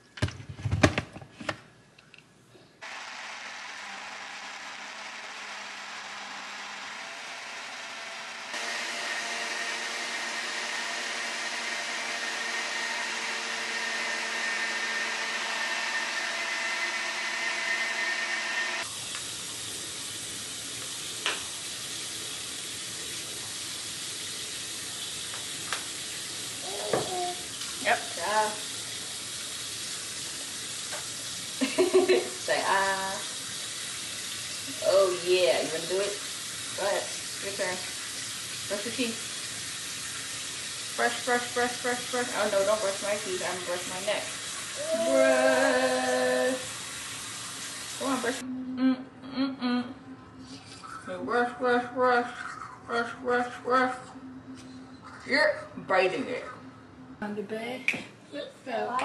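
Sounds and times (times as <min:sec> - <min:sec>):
electric blender running: 0:02.8 - 0:19.2, 0:41.0 - 0:48.4
water tap running: 0:02.8 - 0:48.4
short vocal sounds: 0:48.4 - 0:51.1.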